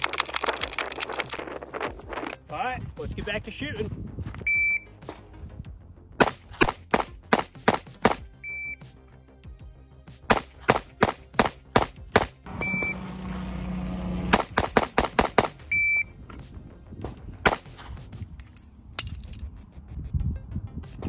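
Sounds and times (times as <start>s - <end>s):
short high electronic beeps: 4.4s - 4.9s, 8.4s - 8.8s, 12.6s - 13.0s, 15.7s - 16.1s
rapid pistol fire: 6.2s - 8.3s, 10.3s - 12.4s, 14.3s - 15.6s.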